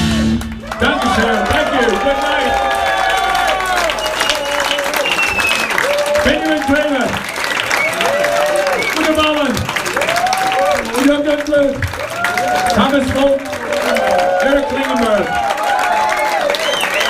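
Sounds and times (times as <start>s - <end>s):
rock band held chord: 0.0s - 0.8s
crowd cheering and whooping: 0.0s - 17.0s
audience applause: 0.2s - 17.0s.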